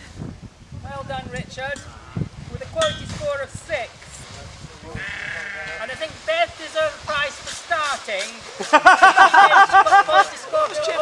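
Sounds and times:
sheep bleat: 0:05.0 - 0:06.0.

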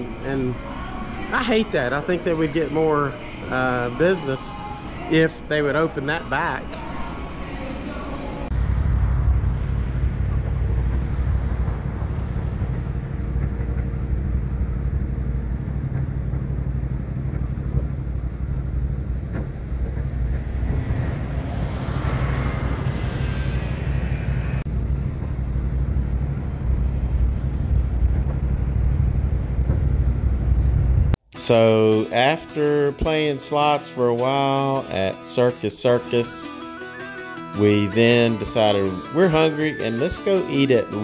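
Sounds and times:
low rumble of road traffic: 0:00.0 - 0:31.2
vehicle passing: 0:06.1 - 0:31.2.

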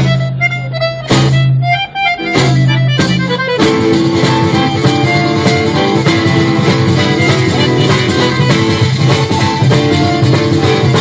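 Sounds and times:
acoustic guitar strumming: 0:00.0 - 0:11.0
button accordion melody: 0:00.0 - 0:11.0
held bass notes: 0:00.0 - 0:11.0.

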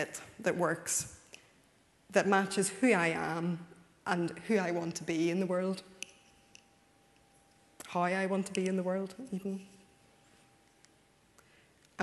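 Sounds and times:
woman speaking: 0:00.0 - 0:01.2, 0:02.1 - 0:05.8, 0:07.8 - 0:09.7
faint steady hum: 0:00.0 - 0:12.0.

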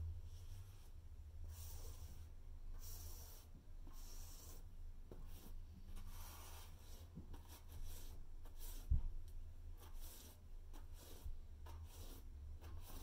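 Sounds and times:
steady low hum: 0:00.0 - 0:07.3
paintbrush scrubbing on canvas: 0:00.3 - 0:09.1, 0:09.7 - 0:13.0.

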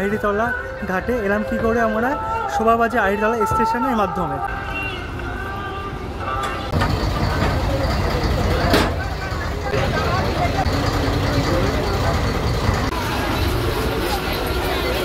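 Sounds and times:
people's voices: 0:00.0 - 0:15.0
boat engine rumbling: 0:05.8 - 0:15.0.

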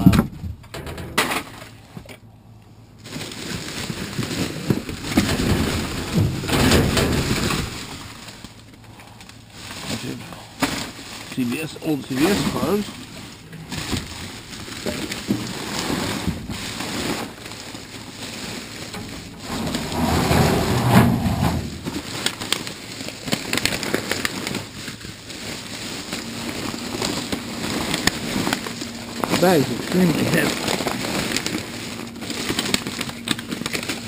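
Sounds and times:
plastic bag rustling: 0:02.9 - 0:34.0.

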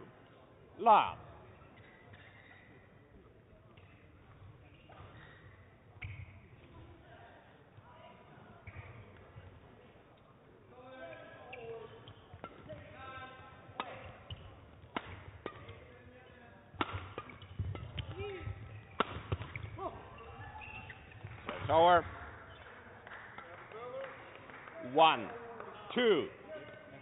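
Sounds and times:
shoes squeaking on floor: 0:01.6 - 0:06.8, 0:11.0 - 0:13.0, 0:13.9 - 0:16.6, 0:17.2 - 0:22.8
rackets striking shuttlecock: 0:04.8 - 0:06.9, 0:11.5 - 0:22.7.

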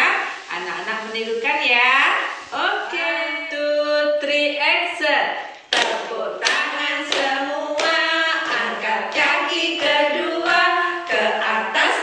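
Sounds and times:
women singing unaccompanied: 0:02.5 - 0:12.0
hand claps: 0:05.7 - 0:12.0.

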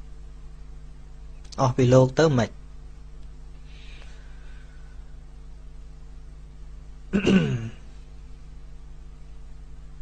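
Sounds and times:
steady low hum: 0:00.0 - 0:10.0
man clearing throat: 0:07.1 - 0:07.9.

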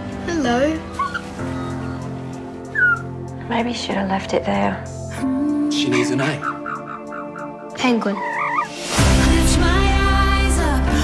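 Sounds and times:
soft background music: 0:00.0 - 0:11.0
bird chick squeaky calls: 0:00.9 - 0:02.1, 0:02.7 - 0:03.1, 0:08.2 - 0:08.7.

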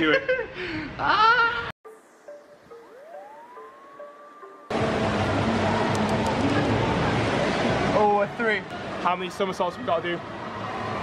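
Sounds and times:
electronic tone gliding upward: 0:01.8 - 0:08.4
soft electronic blips: 0:01.9 - 0:04.7
indoor hall background noise: 0:04.7 - 0:11.0.

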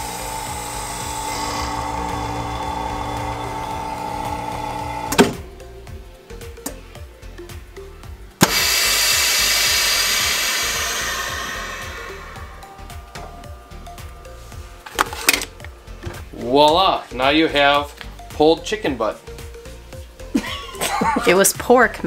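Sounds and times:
vacuum pump humming: 0:00.0 - 0:06.9, 0:08.4 - 0:16.4
air hissing into chamber: 0:08.4 - 0:14.9.

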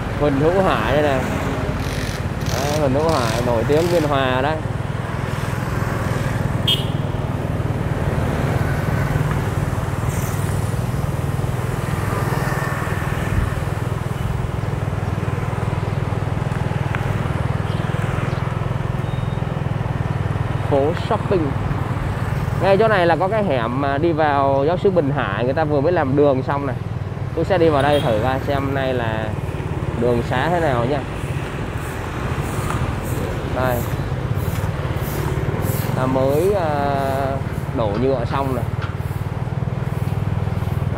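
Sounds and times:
motorbike engine hum: 0:00.0 - 0:40.9
street traffic: 0:00.0 - 0:40.9.

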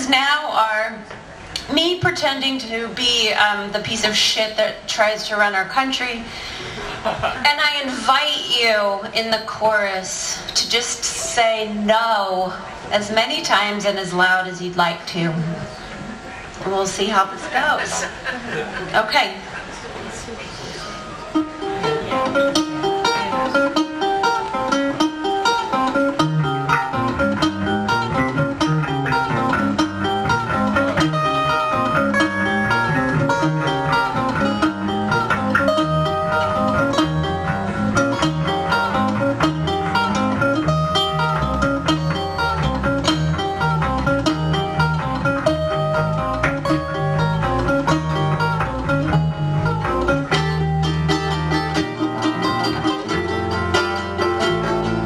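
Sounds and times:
acoustic guitar picking: 0:20.9 - 0:55.0
ukulele picking: 0:20.9 - 0:55.0
electric bass line: 0:21.4 - 0:55.0.

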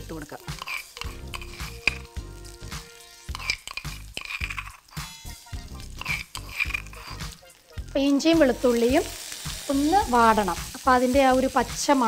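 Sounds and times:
faint sizzle of frying: 0:00.0 - 0:12.0
spoon scraping cookware: 0:00.5 - 0:02.1, 0:03.2 - 0:05.1, 0:05.8 - 0:07.3.

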